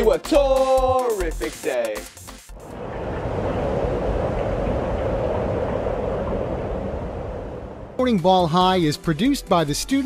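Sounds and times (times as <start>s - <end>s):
rushing rumbling whoosh: 2.5s - 8.2s.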